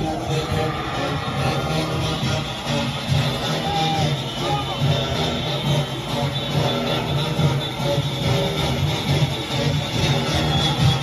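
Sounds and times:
horns playing: 0:00.0 - 0:11.0.

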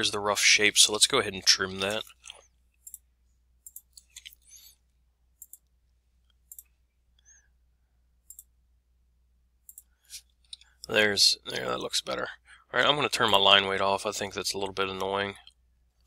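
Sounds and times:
computer mouse clicking: 0:02.8 - 0:03.0, 0:03.6 - 0:04.5, 0:05.4 - 0:05.7, 0:06.5 - 0:06.8, 0:08.2 - 0:08.5, 0:09.7 - 0:09.9.

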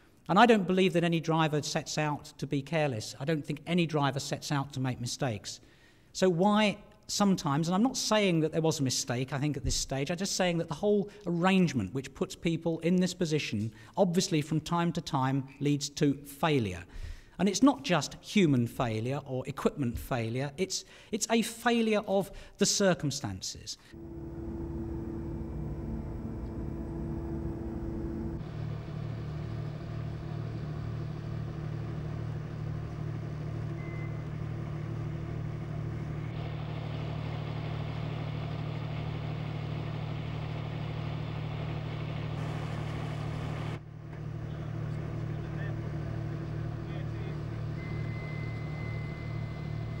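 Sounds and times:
low engine drone: 0:23.9 - 0:50.0.

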